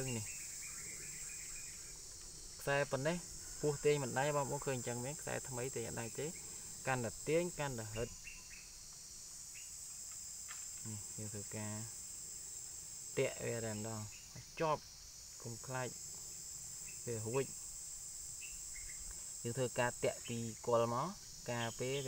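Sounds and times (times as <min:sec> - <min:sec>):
insects buzzing: 0:00.0 - 0:22.0.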